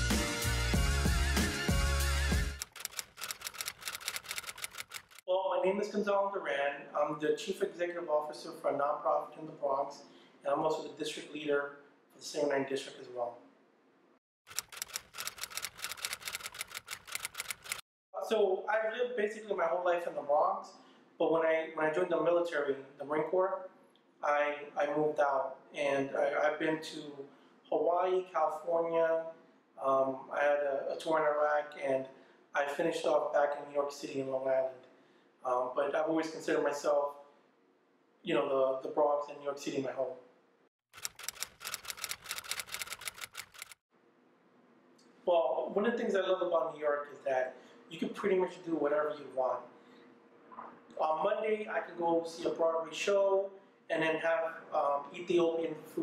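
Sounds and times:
typewriter key clicks: 2.6s - 5.2s, 14.5s - 17.8s, 41.0s - 43.8s.

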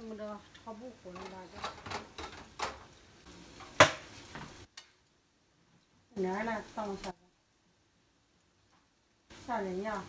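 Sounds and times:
faint sizzling in a wok: 0.0s - 10.0s.

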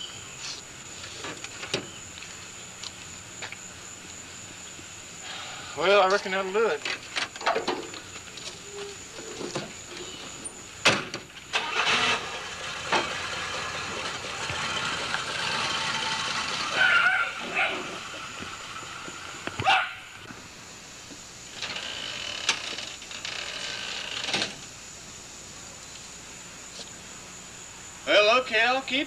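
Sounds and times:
car driving off: 11.5s - 19.7s.

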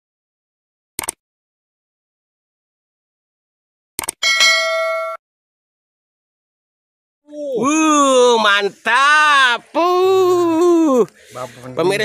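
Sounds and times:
bell ding: 4.2s - 5.2s.

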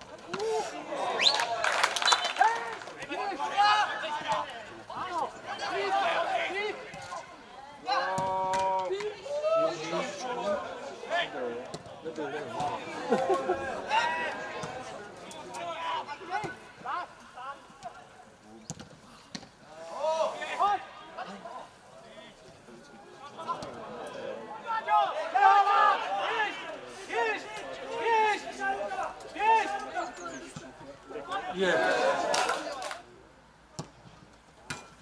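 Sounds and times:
players shouting: 0.0s - 18.2s, 19.7s - 22.4s, 23.1s - 33.1s.

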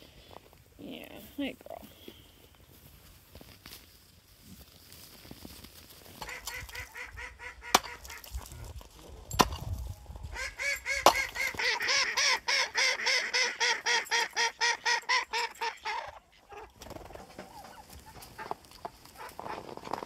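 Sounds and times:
ducks quacking: 6.2s - 8.8s, 10.3s - 18.6s
sharp knocks: 11.0s - 11.3s.

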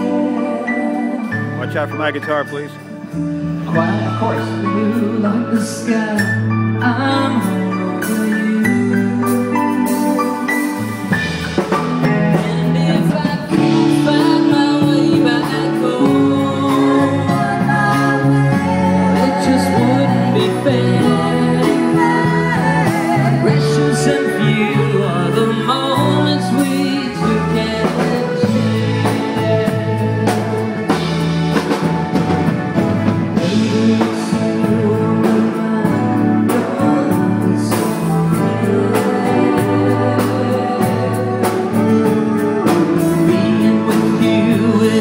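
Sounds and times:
lead vocal singing: 0.0s - 1.8s, 3.4s - 45.0s
live pop band playing ballad: 0.0s - 45.0s.

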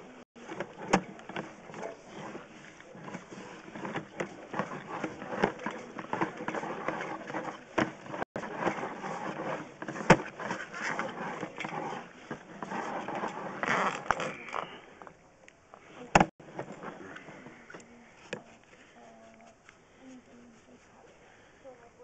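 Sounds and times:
cable rattling and scraping: 0.0s - 15.2s, 15.8s - 18.9s.

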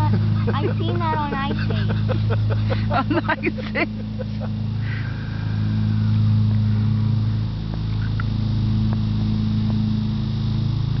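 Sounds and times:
low motor hum: 0.0s - 11.0s.

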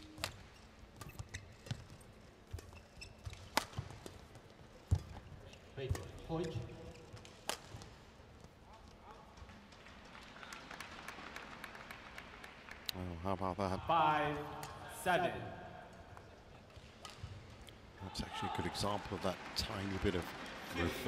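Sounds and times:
shoe squeal: 0.5s - 1.9s, 2.6s - 3.4s
racket striking shuttlecock: 2.5s - 4.2s, 7.2s - 8.0s
crowd noise in hall: 8.5s - 13.0s, 14.4s - 21.0s.

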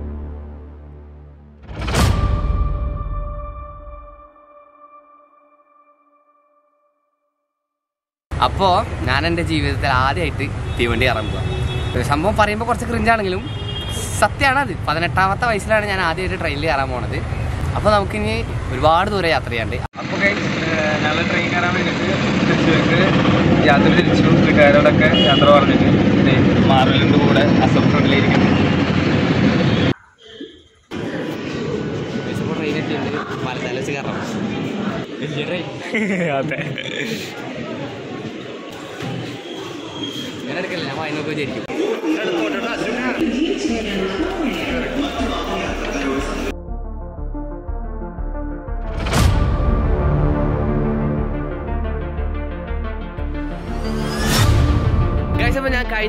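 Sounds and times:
man talking: 8.3s - 28.5s, 35.2s - 37.4s.

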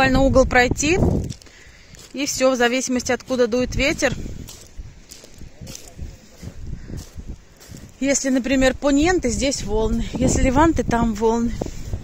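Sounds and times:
footsteps crunching on pebbles: 1.0s - 12.0s.

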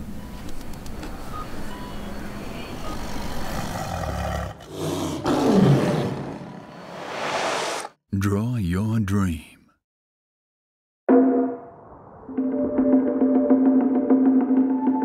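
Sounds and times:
tiger roar: 3.0s - 7.0s.

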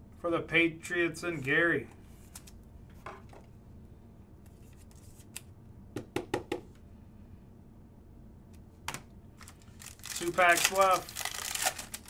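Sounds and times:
plastic card sleeve handling: 9.4s - 12.0s.

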